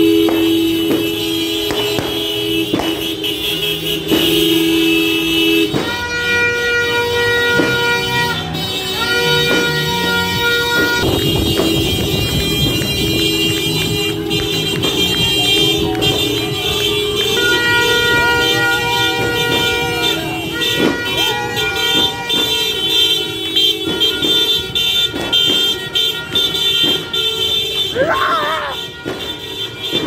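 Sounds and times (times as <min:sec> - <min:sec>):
horns blowing long tones: 0:00.0 - 0:30.0
sharp cracks: 0:00.2 - 0:04.7
voices: 0:11.2 - 0:28.9.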